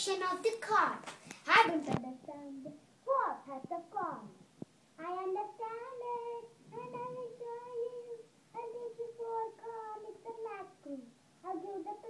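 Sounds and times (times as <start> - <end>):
girl singing unaccompanied: 0.0 - 12.0.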